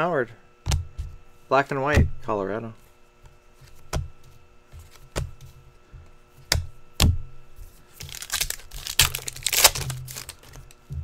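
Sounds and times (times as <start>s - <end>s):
cards rustling and crinkling: 7.7s - 10.8s.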